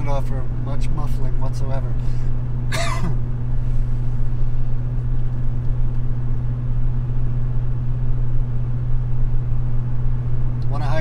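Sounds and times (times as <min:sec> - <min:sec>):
exhaust droning inside cab: 0:00.0 - 0:11.0
road rumble: 0:00.0 - 0:11.0.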